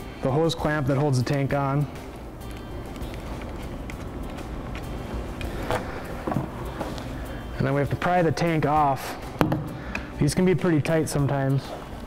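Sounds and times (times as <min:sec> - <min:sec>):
low hum: 0:01.8 - 0:08.0.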